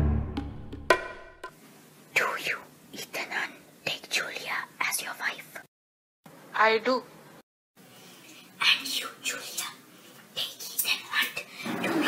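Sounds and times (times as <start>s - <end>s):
person whispering: 2.2s - 5.7s, 8.6s - 9.8s, 10.4s - 11.5s.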